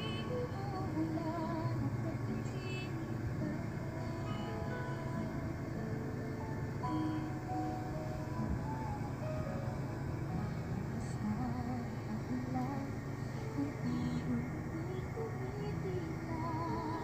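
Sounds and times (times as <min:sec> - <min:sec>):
car cabin rumble: 0:00.0 - 0:17.0
quiet music: 0:00.0 - 0:17.0.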